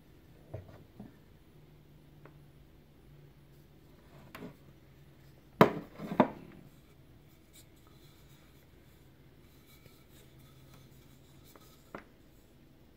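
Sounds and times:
quiet handling of wooden pots: 0.3 - 1.4, 3.4 - 12.6
wooden pot knocking: 5.6 - 6.4.

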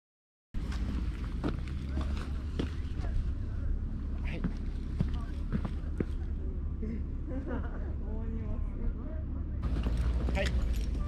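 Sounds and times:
faint distant voices talking: 1.4 - 11.0.

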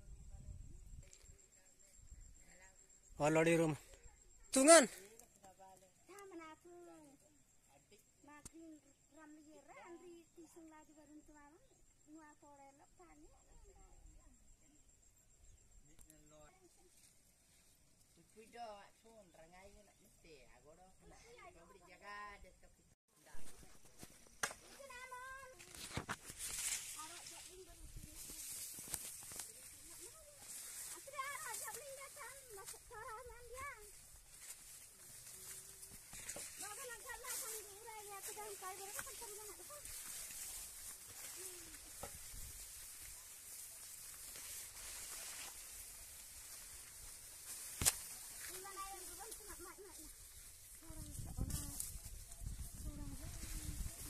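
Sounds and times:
crop stalks rustling: 23.3 - 54.0.

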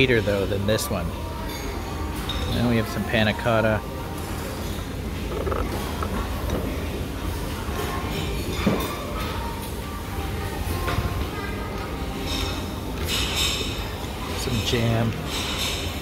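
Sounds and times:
murmur of diners' voices: 0.0 - 16.0.

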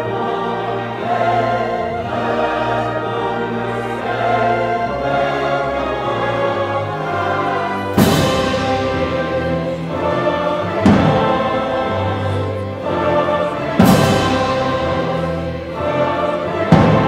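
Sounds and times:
choir singing with orchestra: 0.0 - 17.0.

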